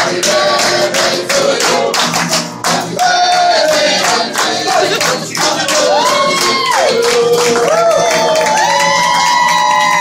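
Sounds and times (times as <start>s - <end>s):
people singing: 0.0s - 8.3s
guitar: 0.0s - 10.0s
people clapping along: 0.0s - 10.0s.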